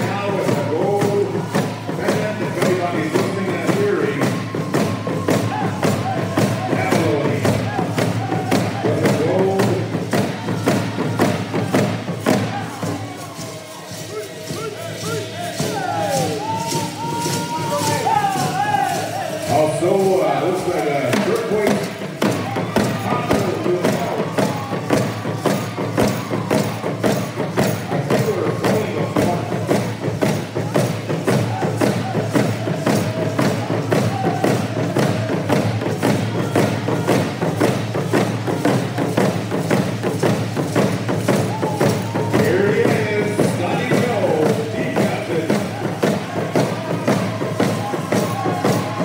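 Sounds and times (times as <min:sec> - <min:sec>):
hand drums beaten in unison: 0:00.0 - 0:49.0.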